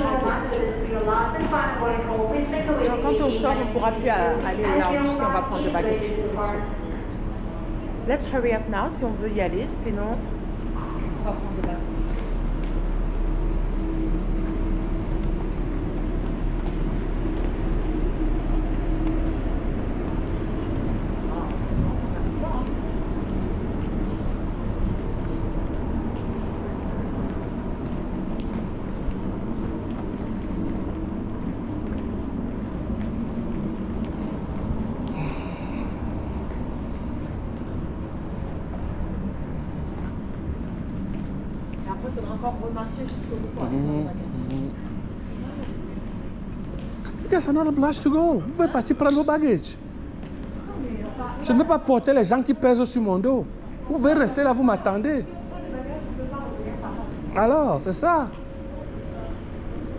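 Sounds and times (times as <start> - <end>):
murmur of distant voices: 0.0 - 16.4, 17.7 - 59.9
steady low hum: 0.0 - 59.9.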